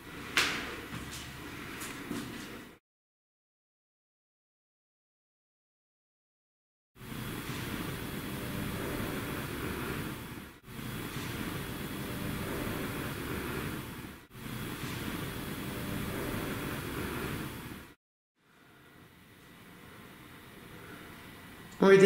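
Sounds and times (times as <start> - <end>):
heavy hiss and rumble: 7.0 - 18.0.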